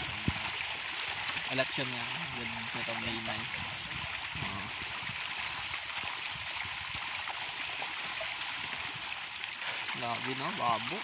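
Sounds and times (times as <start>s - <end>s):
fish splashing in water: 0.0s - 11.0s.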